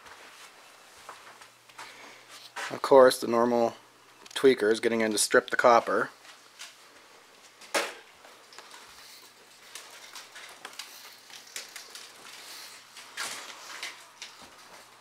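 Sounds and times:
footsteps on littered floor: 0.0 - 2.8, 6.2 - 15.0
faint steady hum and hiss: 0.0 - 15.0.

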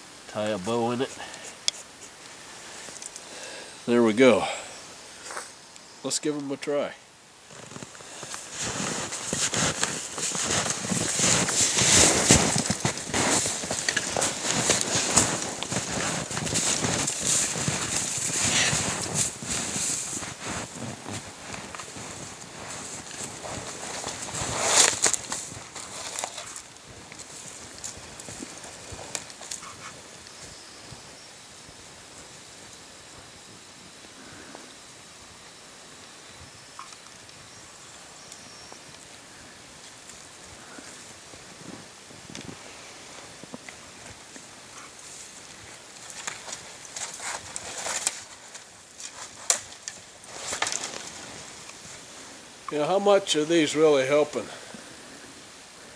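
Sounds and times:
footsteps crunching through snow: 7.4 - 34.5, 36.8 - 54.5.

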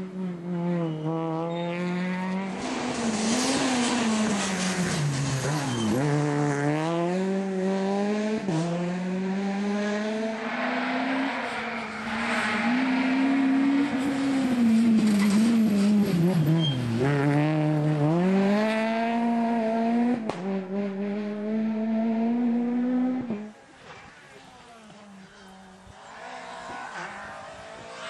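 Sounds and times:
rally car engine revving: 0.0 - 24.0, 24.8 - 28.0.

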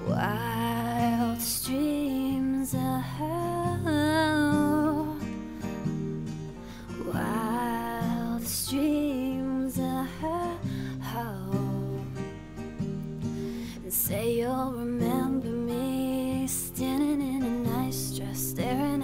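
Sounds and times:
woman singing with vibrato: 0.0 - 5.3, 7.0 - 12.2, 13.8 - 19.0
strummed acoustic guitar: 0.0 - 19.0.

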